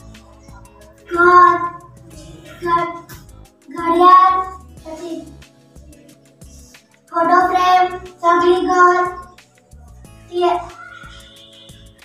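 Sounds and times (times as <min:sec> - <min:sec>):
background music: 0:00.0 - 0:12.0
child singing: 0:00.4 - 0:09.4, 0:10.2 - 0:11.8.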